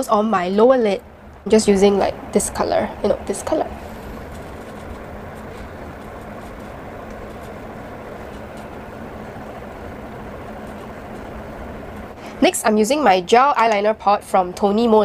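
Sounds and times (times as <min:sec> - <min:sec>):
low rumble and hum: 0:00.0 - 0:15.0.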